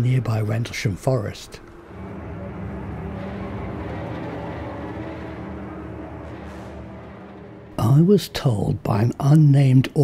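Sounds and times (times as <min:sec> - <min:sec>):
low droning hum: 0:01.5 - 0:08.9.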